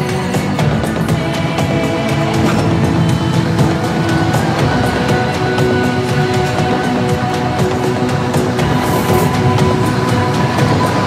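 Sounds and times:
promotional music with steady beat: 0:00.0 - 0:11.0.

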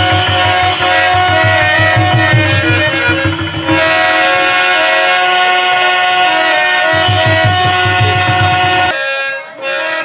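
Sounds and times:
harmonium chord: 0:00.0 - 0:10.0.

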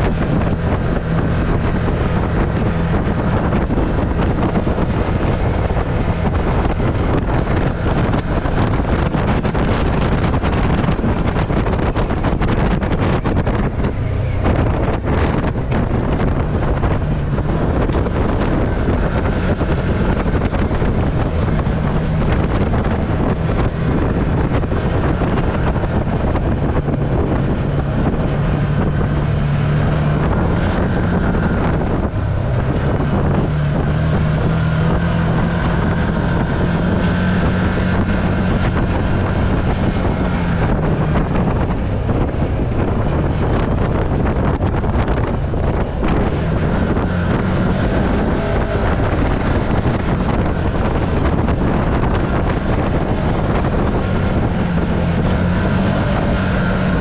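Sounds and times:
side-by-side engine running: 0:00.0 - 0:57.0
wind noise on microphone: 0:00.0 - 0:57.0.

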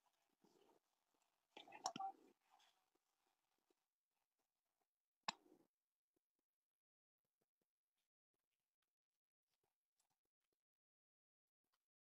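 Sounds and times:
woman whispering: 0:01.6 - 0:02.3.

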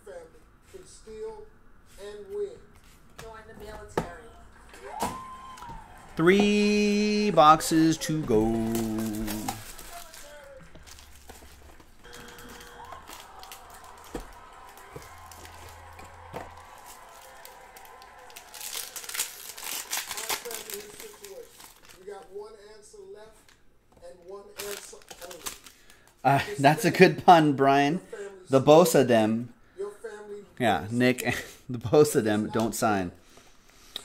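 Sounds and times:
plastic shrink wrap crinkling: 0:06.2 - 0:22.4, 0:24.3 - 0:26.2.

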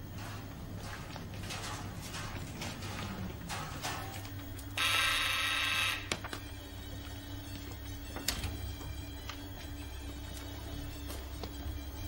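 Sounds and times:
electric bell ringing: 0:04.8 - 0:06.1.

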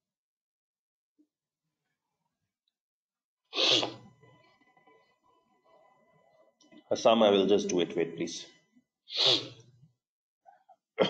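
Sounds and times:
person sneezing: 0:03.6 - 0:04.0, 0:09.1 - 0:09.6.

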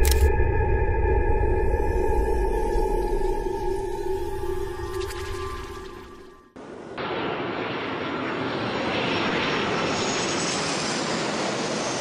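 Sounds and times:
music: 0:00.0 - 0:06.6.

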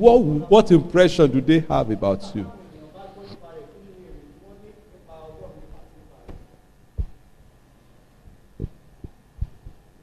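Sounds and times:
short low thumps: 0:08.3 - 0:09.9.

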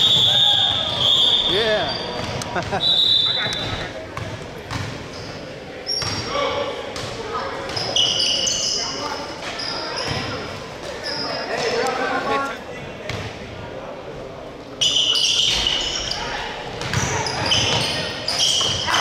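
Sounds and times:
spectators chatting: 0:00.0 - 0:19.0
short high squeaks: 0:17.2 - 0:18.9.

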